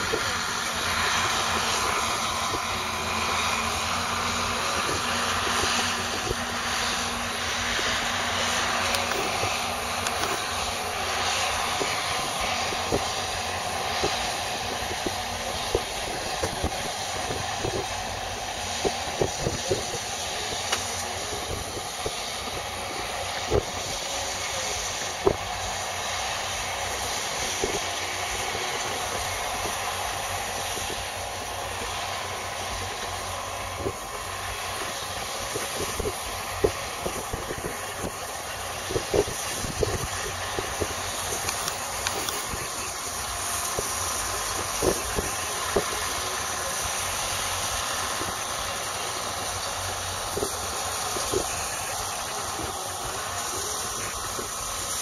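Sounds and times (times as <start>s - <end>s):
round baler running: 0.0s - 55.0s
tractor engine running: 0.0s - 55.0s.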